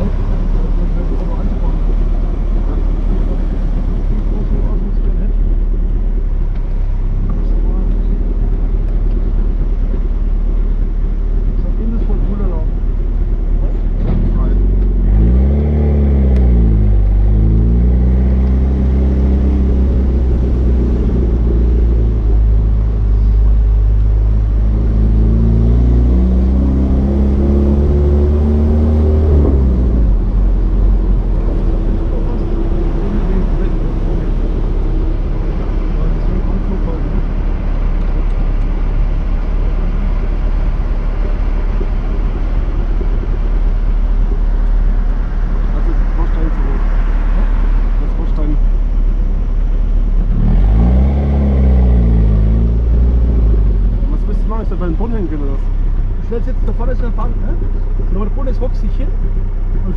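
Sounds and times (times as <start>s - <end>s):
car engine revving: 0.0s - 59.9s
road and wind noise: 0.0s - 59.9s.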